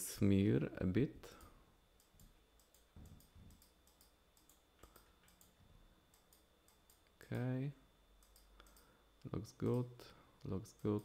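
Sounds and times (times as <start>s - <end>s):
low steady hum: 0.0s - 11.0s
computer mouse clicks: 1.4s - 7.5s, 8.2s - 8.9s.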